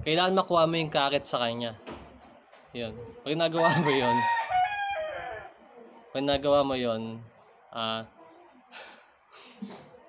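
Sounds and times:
rooster crowing: 3.5 - 5.6.

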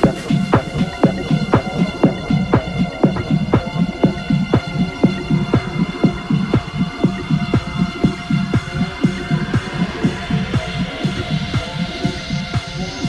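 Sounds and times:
bright synth layer: 0.0 - 13.0
synth drone: 0.0 - 13.0
techno kick drum: 0.0 - 13.0
throbbing bassline: 0.0 - 13.0.

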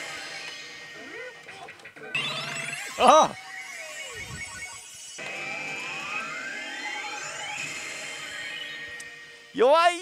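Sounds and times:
steady electronic tones: 1.4 - 9.6
falling electronic tone: 2.1 - 9.5
long rising electronic sweep: 3.4 - 9.4.

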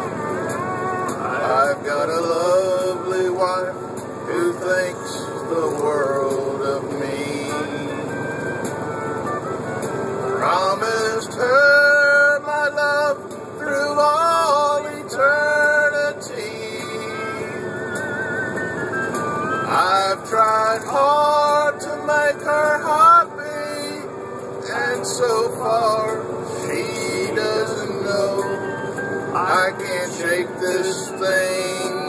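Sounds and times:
truck engine drone: 0.0 - 32.0
man singing unaccompanied: 1.0 - 8.1, 10.4 - 17.6, 19.7 - 28.6, 29.4 - 32.0.

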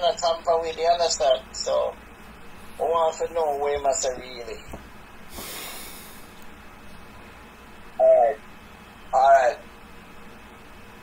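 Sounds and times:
man breathing out: 5.3 - 6.4.

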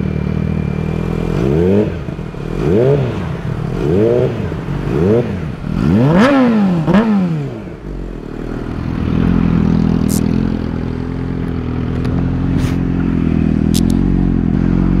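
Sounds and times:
motorcycle engine running: 0.0 - 15.0
short sharp clicks: 13.7 - 14.0.

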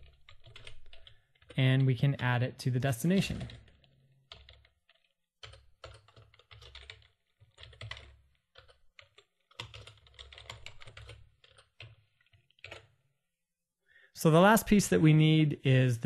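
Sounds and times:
typing on a computer keyboard: 0.0 - 1.9, 3.2 - 13.0.

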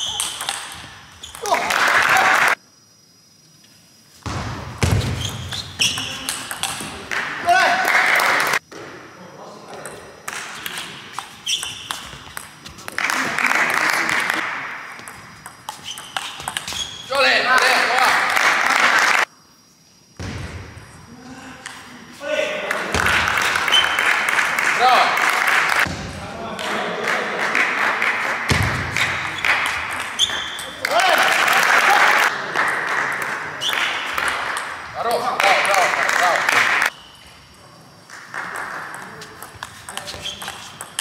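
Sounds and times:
players shouting: 1.4 - 2.6, 30.2 - 32.3.

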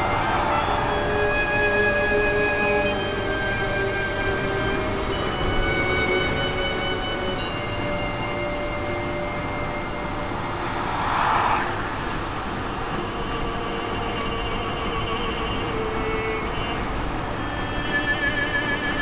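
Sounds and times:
car interior road noise: 0.0 - 17.4.

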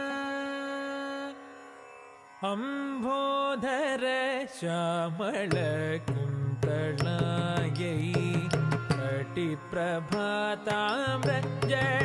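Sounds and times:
person singing with ornaments: 0.0 - 1.6, 2.4 - 12.0.

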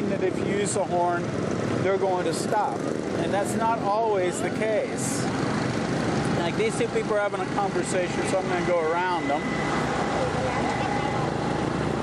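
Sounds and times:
motorbike engine: 0.0 - 12.0
road noise: 0.0 - 12.0
faint steady tone: 7.3 - 11.7.

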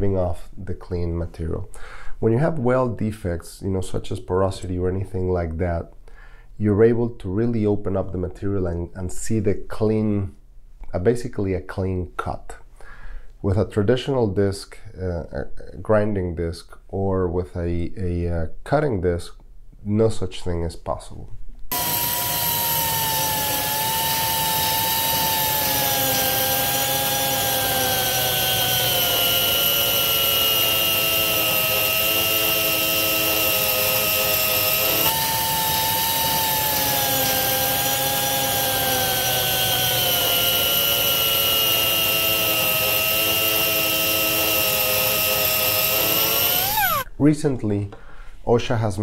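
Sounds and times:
angle grinder cutting metal: 21.7 - 47.1.

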